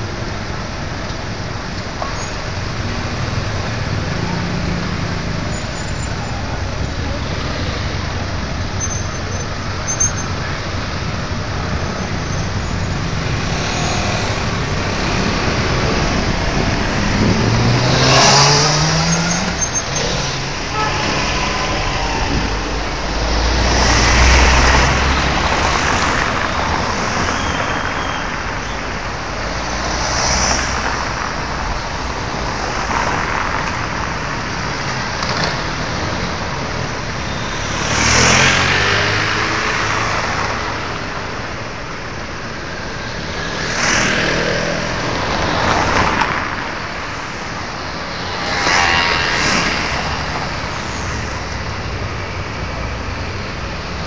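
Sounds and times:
cars and vans driving past: 0.0 - 54.0.

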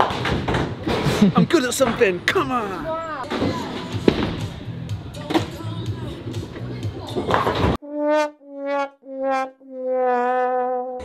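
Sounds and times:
murmur of bowling alley: 0.0 - 7.8.

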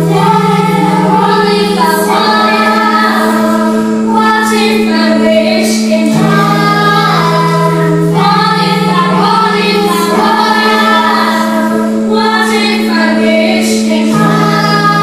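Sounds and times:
children's choir singing: 0.0 - 15.0.

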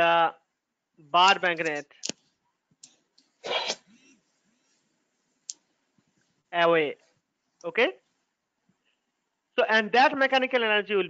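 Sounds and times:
person sneezing: 3.4 - 4.1.

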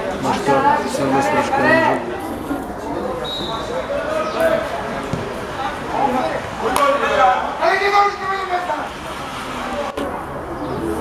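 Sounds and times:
voices calling out: 0.0 - 11.0
referee's whistle blast: 3.2 - 3.7.

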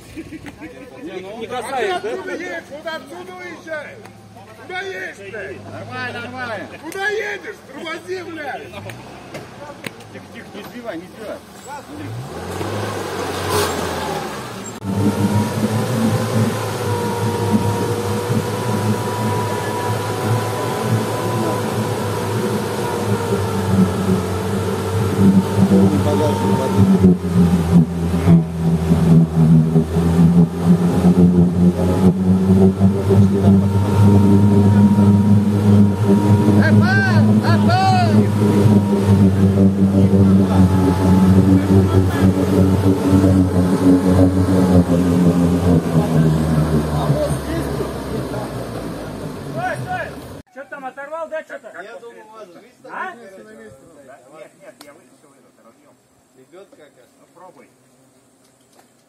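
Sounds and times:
off-road vehicle engine revving: 1.4 - 50.5.

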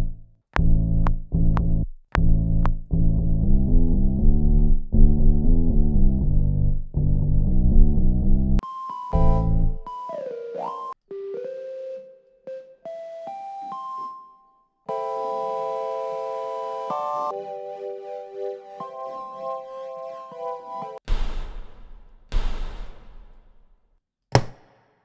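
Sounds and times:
sampled keyboard notes and chords: 0.0 - 14.3, 14.9 - 21.0.

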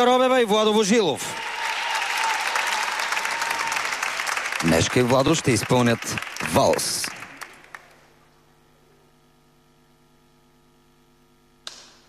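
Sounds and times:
faint steady hum: 1.0 - 12.0.

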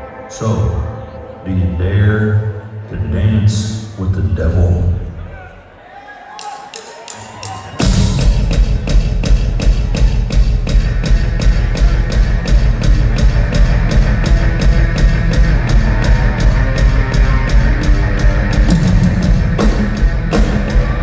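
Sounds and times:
drum kit beat: 6.6 - 21.0
rock band playing: 7.8 - 21.0.

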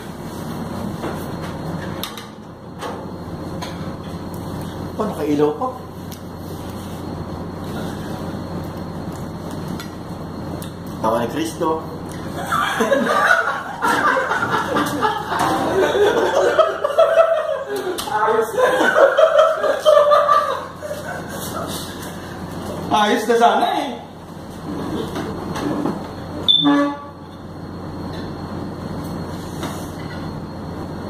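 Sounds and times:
machinery hum: 0.0 - 31.0.

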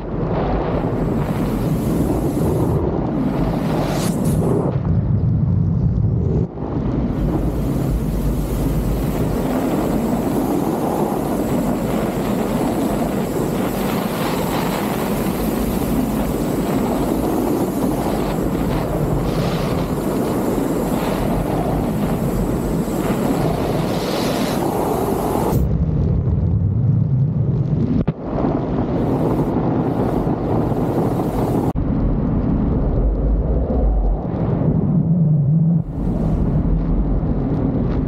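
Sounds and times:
wind rushing over microphone: 0.0 - 38.0.

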